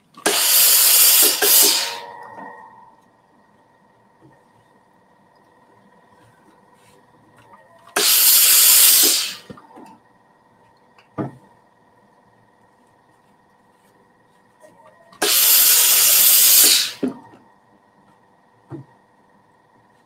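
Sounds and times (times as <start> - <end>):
steam iron hissing: 0.2 - 2.6, 8.0 - 9.5, 15.2 - 17.1.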